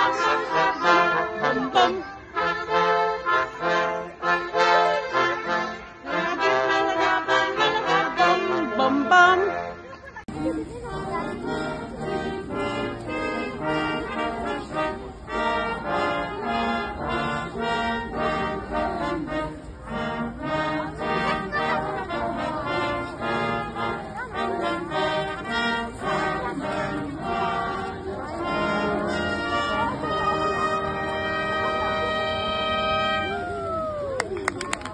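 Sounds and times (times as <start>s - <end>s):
brass band playing: 0.0s - 33.6s.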